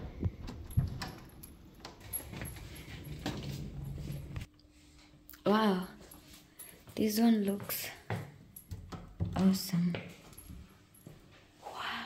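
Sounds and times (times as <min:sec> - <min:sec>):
handling noise: 0:00.0 - 0:04.5
low hum: 0:00.0 - 0:06.6.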